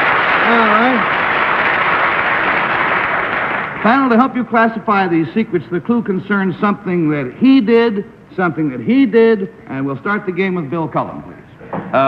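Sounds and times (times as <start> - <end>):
audience laughing and applauding: 0.0 - 3.8.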